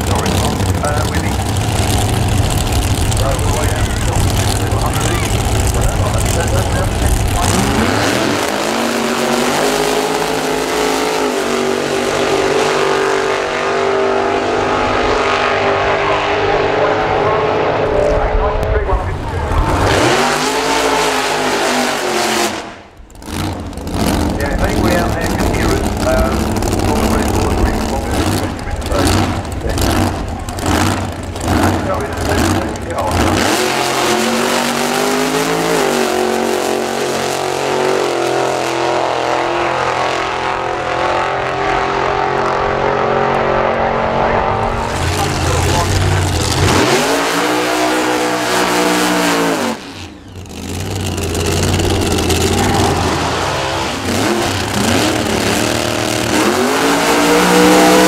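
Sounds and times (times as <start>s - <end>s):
drag racing engines revving: 0.0s - 58.0s.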